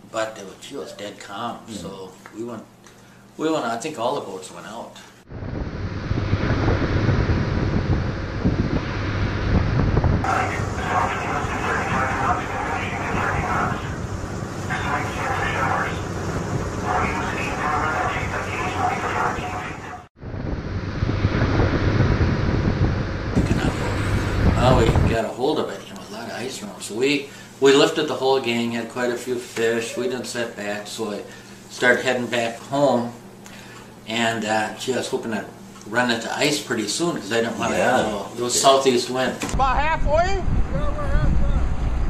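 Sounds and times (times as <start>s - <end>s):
voices: 1.2s - 2.3s, 10.2s - 20.1s, 23.4s - 33.2s
boat engine rumble: 5.3s - 25.2s
spray rushing along hull: 5.4s - 20.0s, 23.4s - 25.2s
wind: 39.4s - 42.0s.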